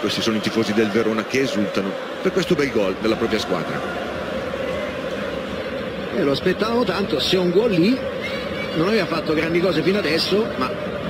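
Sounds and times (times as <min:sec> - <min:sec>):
crowd cheering: 0:00.0 - 0:11.0
stadium crowd din: 0:00.0 - 0:11.0.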